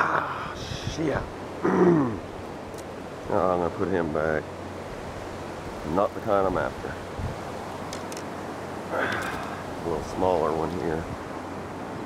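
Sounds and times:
wind noise on microphone: 0.0 - 1.4, 5.0 - 7.8, 10.9 - 12.0.

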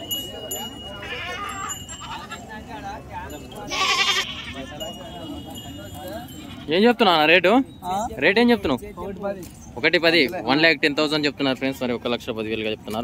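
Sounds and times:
crowd of men talking: 0.0 - 13.0.

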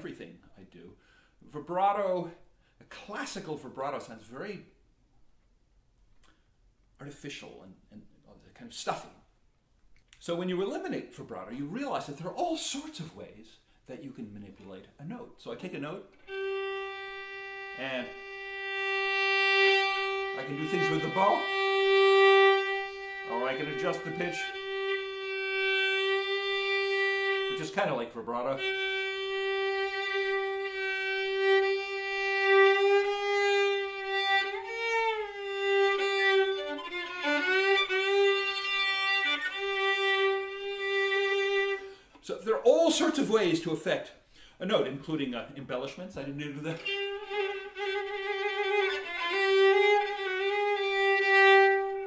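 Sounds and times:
bowed violin note: 16.1 - 42.0, 46.6 - 52.0.

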